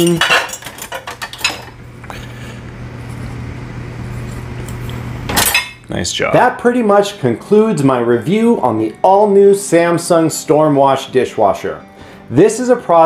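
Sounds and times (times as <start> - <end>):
spoon and dishes clinking: 0.0 - 1.8, 5.3 - 5.8
steady low hum: 0.4 - 6.4.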